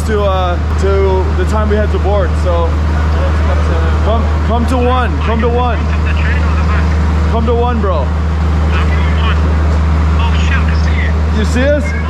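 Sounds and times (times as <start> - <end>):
diesel train idling: 0.0 - 12.0
faint voices: 0.9 - 12.0.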